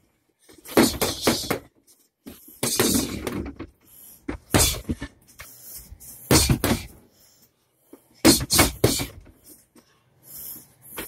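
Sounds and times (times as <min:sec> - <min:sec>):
boxing gloves hitting punching dummy: 0:00.6 - 0:01.7, 0:02.6 - 0:03.6, 0:06.3 - 0:07.0, 0:08.2 - 0:09.3.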